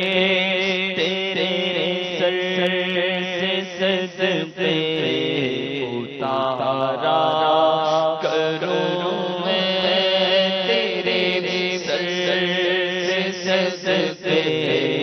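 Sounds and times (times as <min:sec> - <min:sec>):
man singing devotional poem: 0:00.0 - 0:15.0.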